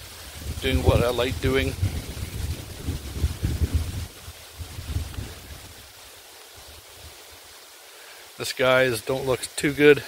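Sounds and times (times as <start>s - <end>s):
wind buffeting microphone: 0.0s - 5.9s.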